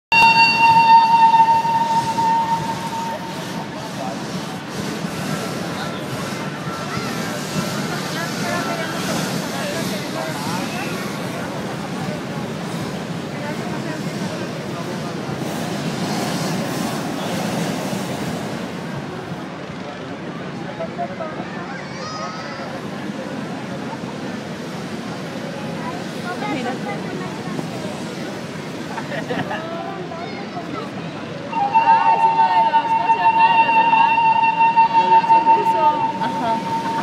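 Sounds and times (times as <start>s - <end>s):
steady high-pitched tone: 0.1s - 4.0s, 31.5s - 37.0s.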